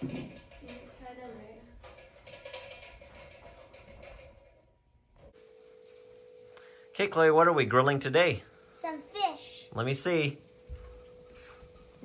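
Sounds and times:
faint steady hum: 3.4 - 12.0.

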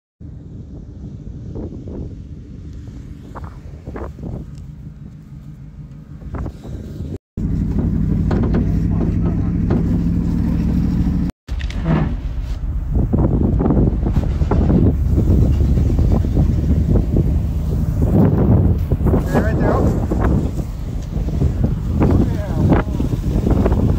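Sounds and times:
vehicle engine running: 0.2 - 23.9
trailer knocking and rattling: 7.4 - 23.9.

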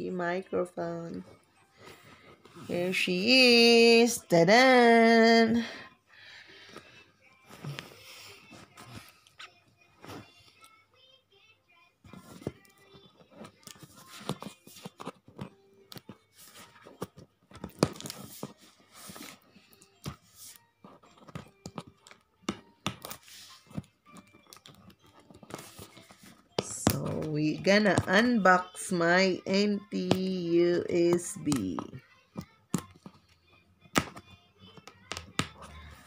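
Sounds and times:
faint background music: 0.0 - 36.0.

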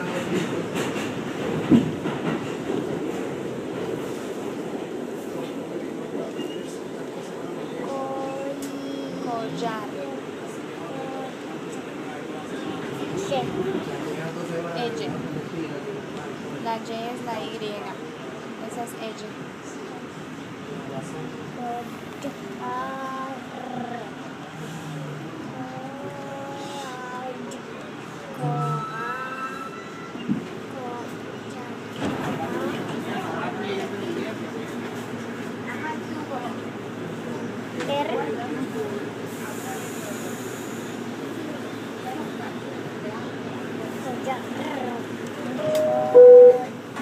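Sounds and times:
train wheels on track: 0.0 - 22.6, 23.4 - 47.0.

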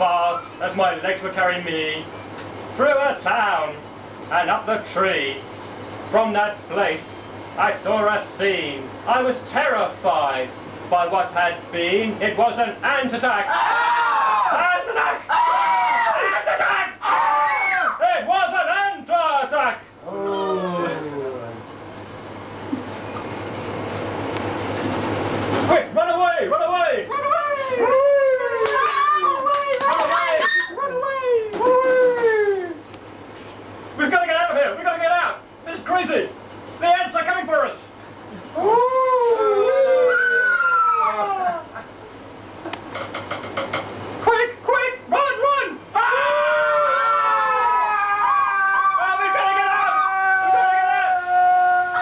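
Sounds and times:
person howling into microphone: 17.0 - 18.0, 20.0 - 21.6, 27.1 - 29.5, 30.2 - 32.8, 38.6 - 41.8, 46.0 - 52.0
wordless human vocal cries: 20.0 - 21.6, 27.2 - 29.4, 30.2 - 32.8, 38.3 - 41.9, 46.0 - 52.0.

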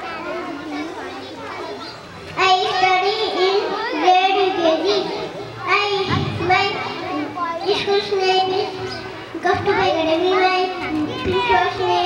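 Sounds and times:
child speaking into a microphone: 0.0 - 12.0.

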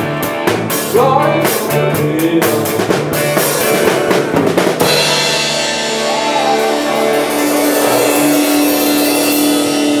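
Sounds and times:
rock band chord ringing: 0.0 - 10.0
cymbals crashing: 3.4 - 10.0.

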